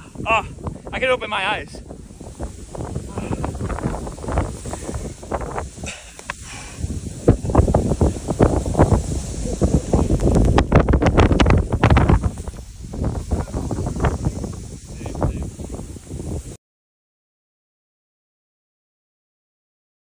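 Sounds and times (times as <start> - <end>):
strong wind buffeting microphone: 0.0 - 16.6.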